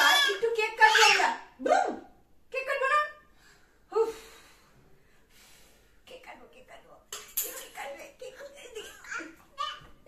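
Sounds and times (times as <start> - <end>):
faint breathy noise: 3.2 - 6.1.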